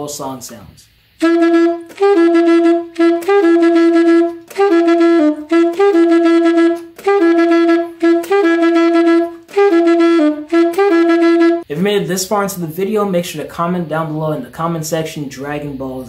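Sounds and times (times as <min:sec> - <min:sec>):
alto saxophone playing a swung riff: 0:01.2 - 0:11.7.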